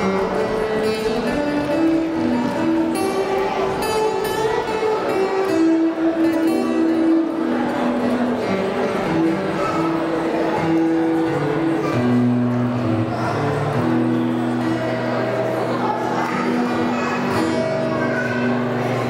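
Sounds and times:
acoustic guitar picking: 0.0s - 19.0s.

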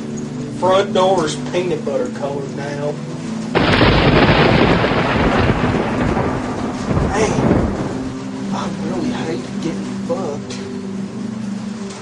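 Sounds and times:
loud rushing noise with rumble: 3.6s - 8.5s.

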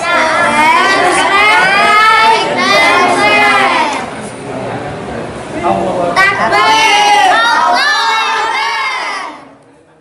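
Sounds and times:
children shouting a cheer: 6.5s - 9.4s.

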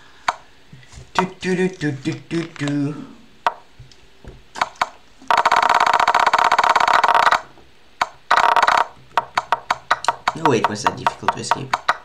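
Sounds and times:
chess piece move clicks: 4.6s - 12.0s.

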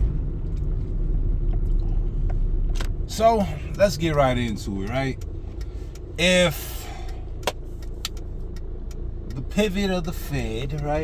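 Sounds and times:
car engine idling: 0.0s - 11.0s
faint ticks: 3.1s - 11.0s.

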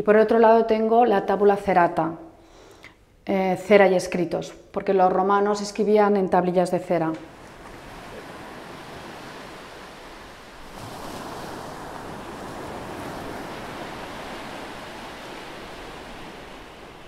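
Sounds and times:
seashell surf-like rushing: 7.3s - 17.0s.

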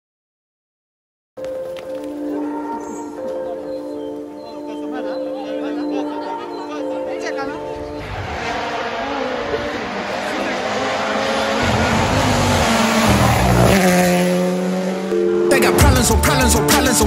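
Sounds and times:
rally car passing at speed: 7.6s - 15.8s
hip-hop music: 15.3s - 17.0s.

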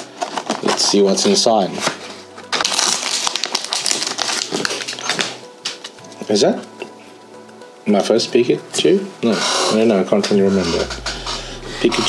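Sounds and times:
foil wrapper crinkling and tearing: 2.5s - 5.3s.

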